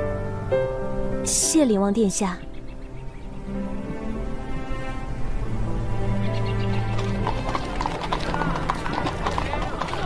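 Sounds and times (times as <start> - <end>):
dramatic orchestral score: 3.6 - 10.0
horse hooves clip-clopping: 6.7 - 10.0.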